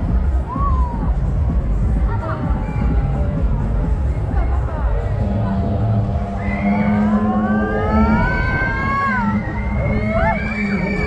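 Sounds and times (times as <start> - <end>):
low hum: 0.0 - 11.0
siren-like whine rising: 6.2 - 11.0.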